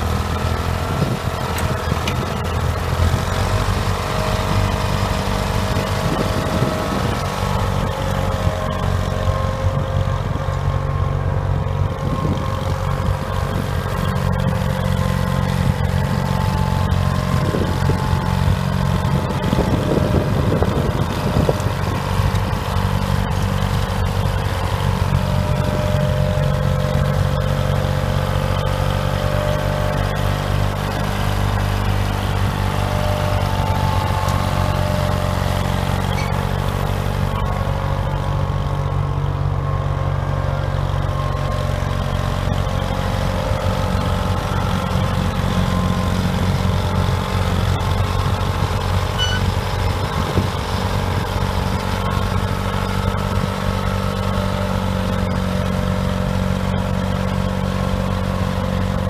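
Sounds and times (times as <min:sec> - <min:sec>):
crawler tractor engine running: 0:00.0 - 0:59.0.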